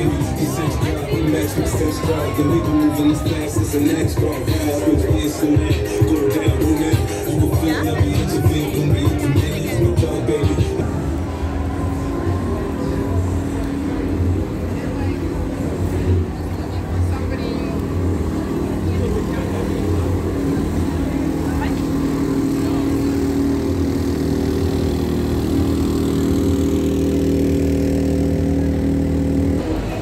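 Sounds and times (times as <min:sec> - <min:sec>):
crowd voices: 0:00.0 - 0:30.0
small engine humming: 0:00.0 - 0:30.0.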